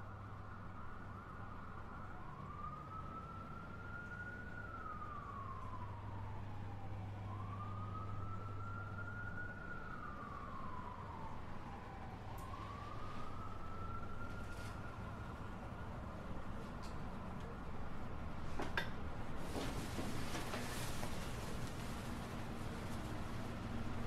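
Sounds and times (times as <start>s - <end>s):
siren wailing: 0.5s - 16.1s.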